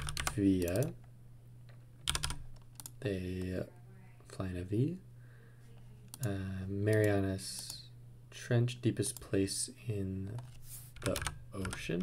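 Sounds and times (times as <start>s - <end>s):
keyboard keys tapped: 0.0s - 0.9s
low steady hum: 0.0s - 12.0s.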